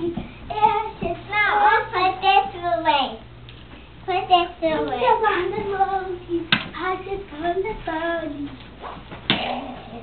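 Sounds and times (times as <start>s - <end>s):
young child singing: 0.0s - 3.3s, 4.1s - 8.6s.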